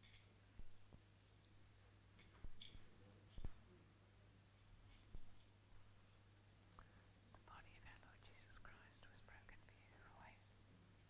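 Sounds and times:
person whispering: 7.4 - 10.5.

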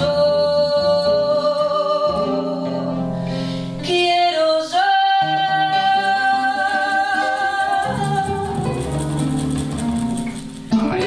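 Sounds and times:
bass guitar: 0.0 - 3.9, 6.9 - 11.0
acoustic guitars: 0.0 - 11.0.

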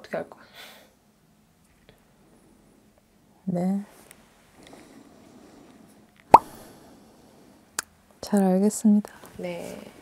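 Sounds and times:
faint room noise: 0.0 - 10.0
sharp pop: 6.3 - 6.6.

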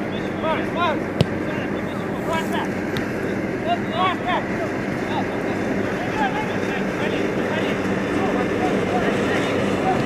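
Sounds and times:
football being kicked: 1.1 - 1.7, 2.9 - 3.2.

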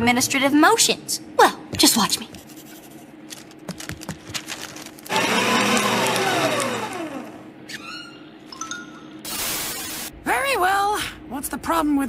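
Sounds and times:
paper shredder shredding: 3.4 - 7.5.

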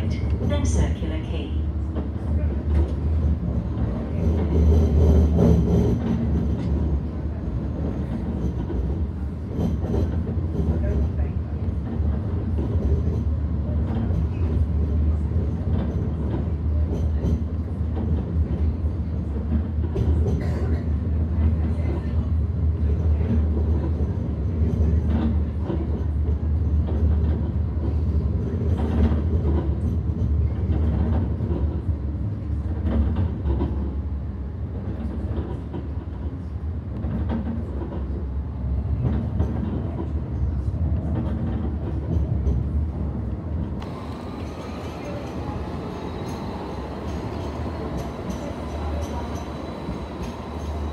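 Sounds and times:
tram rumbling on rails: 0.0 - 50.9.

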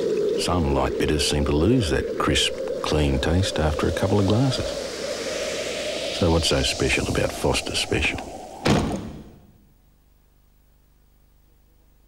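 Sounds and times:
heavy thump: 8.6 - 9.6.

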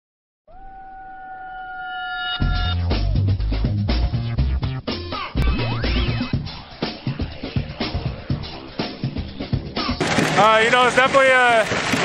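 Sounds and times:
higher synthesized tones: 4.0 - 9.9
synthesized tone sliding upward: 5.4 - 9.0.

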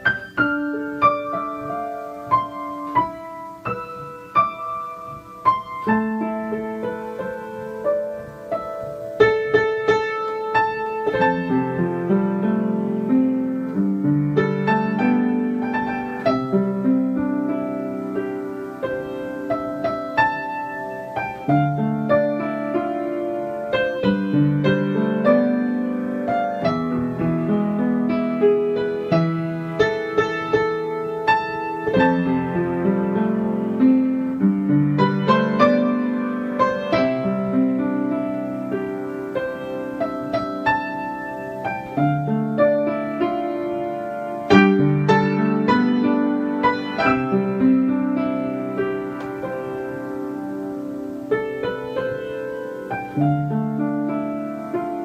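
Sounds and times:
piano music: 0.0 - 55.0.

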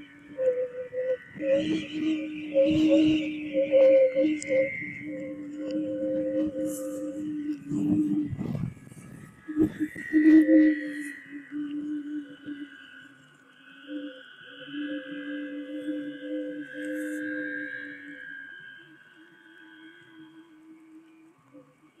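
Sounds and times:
wind-blown gourd organs: 0.0 - 21.0
wind buffeting microphone: 7.6 - 10.2.

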